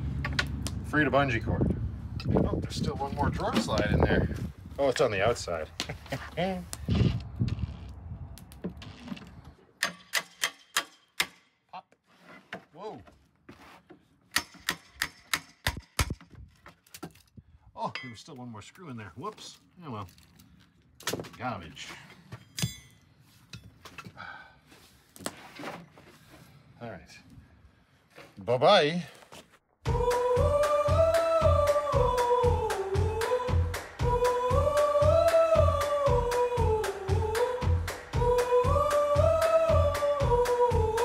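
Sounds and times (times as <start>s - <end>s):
person humming: 29.9s - 41.0s.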